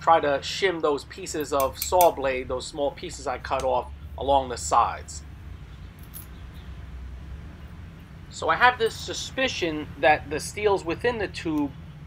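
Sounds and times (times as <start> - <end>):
steel pieces clicking: 1.4 - 2.2.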